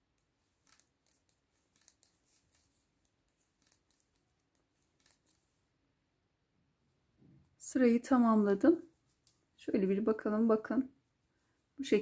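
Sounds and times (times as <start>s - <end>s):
knitting needles clicking: 0.0s - 5.6s, 8.9s - 9.6s.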